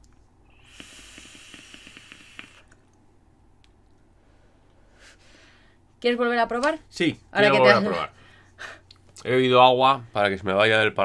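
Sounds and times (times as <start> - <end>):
electronic cigarette hissing and crackling: 0.4 - 2.8
short breath: 0.5 - 2.7, 4.2 - 5.8.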